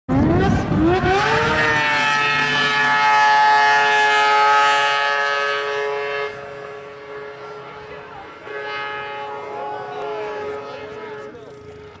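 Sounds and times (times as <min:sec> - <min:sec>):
snowmobile engine at high revs: 0:00.1 - 0:12.0.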